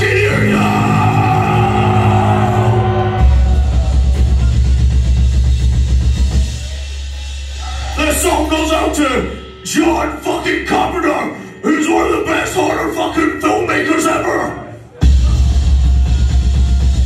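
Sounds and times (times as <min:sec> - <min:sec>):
metal band playing live: 0:00.0 - 0:14.3.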